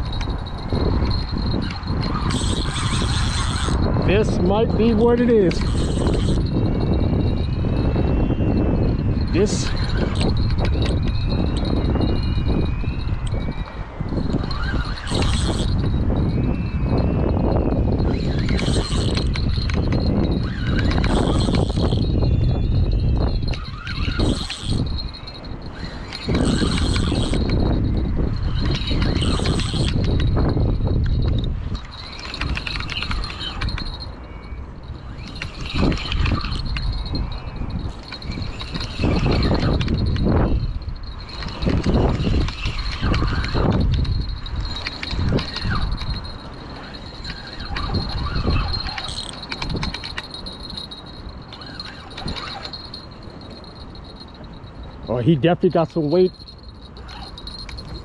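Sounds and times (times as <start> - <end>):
wind buffeting microphone: 0.0 - 58.0
fishing rod handling noise: 2.1 - 3.8.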